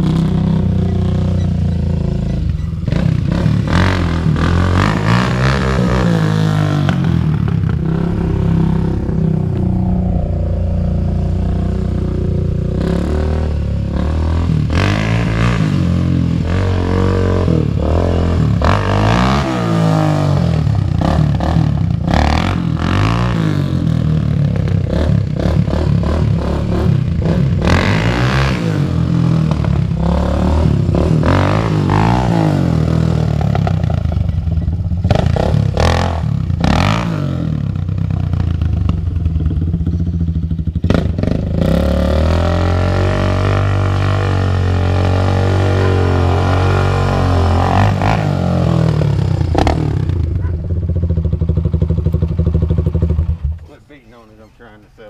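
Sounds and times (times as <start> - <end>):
quad bike engine revving: 0.0 - 53.6.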